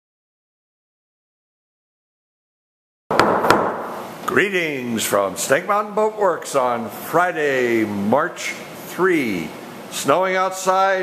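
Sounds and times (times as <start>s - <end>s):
sharp knocks: 3.1s - 4.1s
steady room noise hiss: 3.1s - 11.0s.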